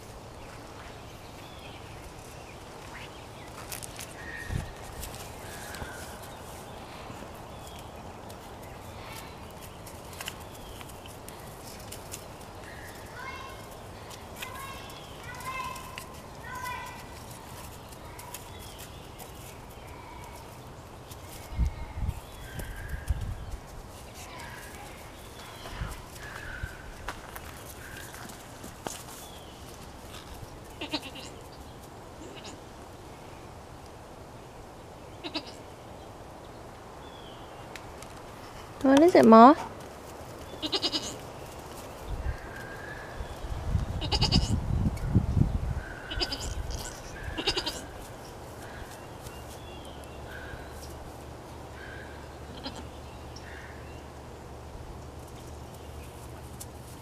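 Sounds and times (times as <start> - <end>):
goat kid bleating: 30.8 - 31.4, 32.2 - 32.6, 35.2 - 35.6, 40.6 - 41.2, 44.0 - 44.6, 46.0 - 48.1, 52.5 - 52.9.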